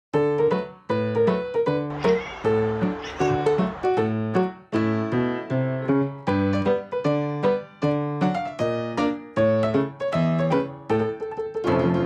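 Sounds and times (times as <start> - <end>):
piano music: 0.2 - 12.0.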